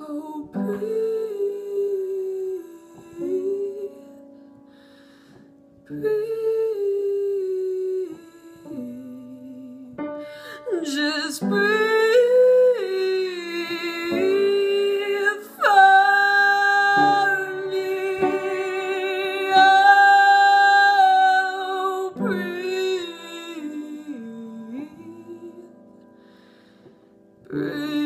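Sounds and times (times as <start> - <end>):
woman singing with vibrato: 0.0 - 4.3, 5.9 - 26.0, 27.5 - 28.0.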